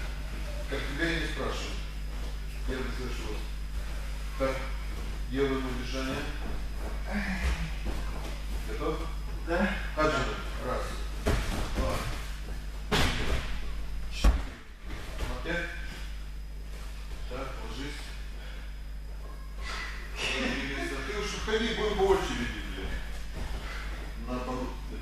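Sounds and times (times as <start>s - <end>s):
electrical hum: 0.0s - 25.0s.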